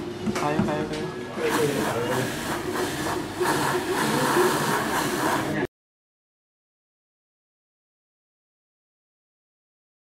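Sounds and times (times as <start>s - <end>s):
electric shoe polisher brush spinning: 1.4s - 5.7s.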